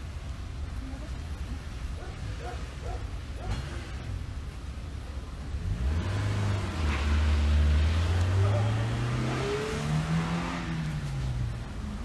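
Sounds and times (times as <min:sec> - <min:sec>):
vehicle engine accelerating: 0:05.5 - 0:12.0.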